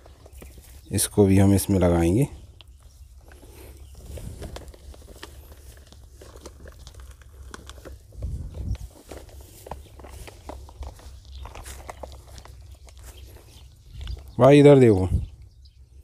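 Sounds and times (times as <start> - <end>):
soil crunching: 0.0 - 15.3
plastic bag crinkling: 2.5 - 14.3.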